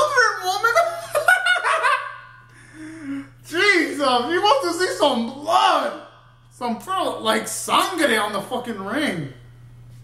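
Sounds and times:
man laughing loudly: 0.8 - 2.4.

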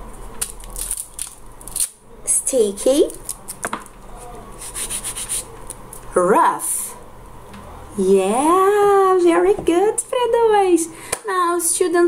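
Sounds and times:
crinkling of small objects: 0.3 - 2.0.

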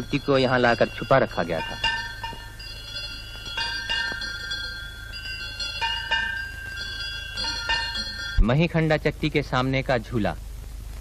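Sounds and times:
temple bell ringing: 0.0 - 9.0.

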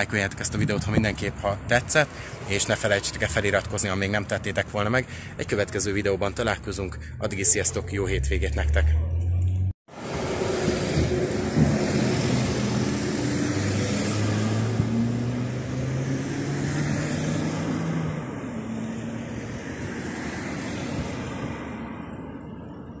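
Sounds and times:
tyre and road noise: 0.0 - 23.0
vehicle engines humming: 0.0 - 23.0.

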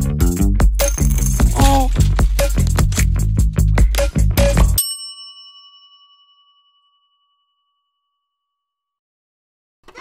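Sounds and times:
bell-like chime ding: 4.8 - 8.8.

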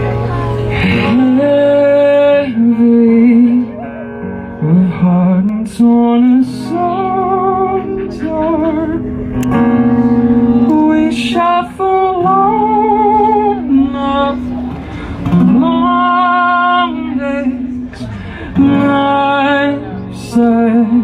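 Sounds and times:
strummed acoustic guitar: 0.0 - 21.0.

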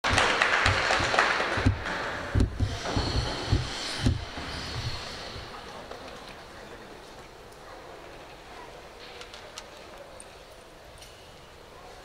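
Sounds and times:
spectators applauding: 0.0 - 2.4.

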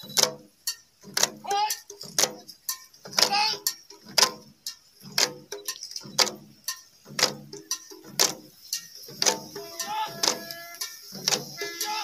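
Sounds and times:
hand drums beating dance rhythm: 0.0 - 12.0.

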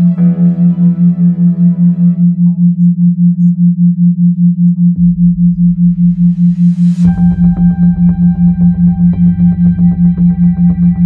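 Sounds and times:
low pulsing pure tone: 0.0 - 11.0
low rumble: 0.0 - 11.0.

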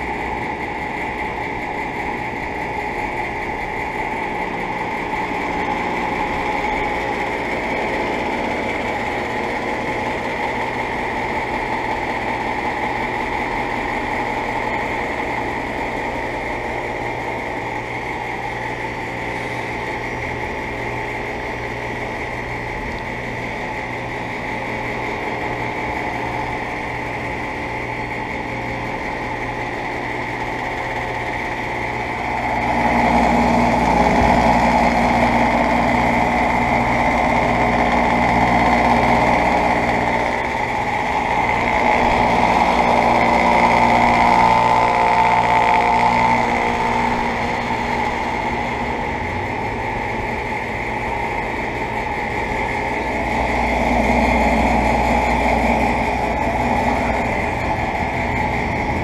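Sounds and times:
heat pump humming: 0.0 - 59.0
slow low pulsing: 0.0 - 59.0.

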